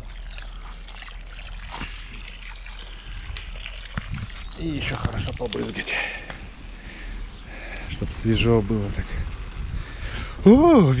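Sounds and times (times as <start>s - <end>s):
garden hose spraying water: 0.0s - 11.0s.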